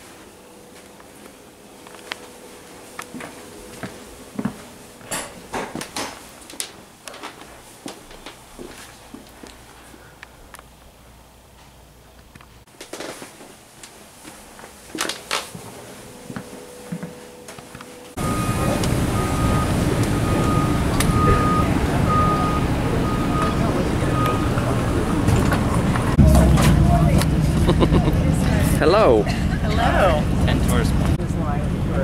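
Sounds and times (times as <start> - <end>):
traffic: 18.0 - 32.0
people's voices: 18.2 - 32.0.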